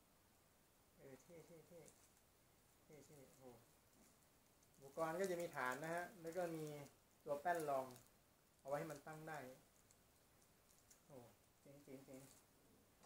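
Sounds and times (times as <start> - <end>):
man talking: 1.0 - 2.0, 2.9 - 3.6, 4.8 - 8.0, 8.7 - 9.6, 11.1 - 12.4.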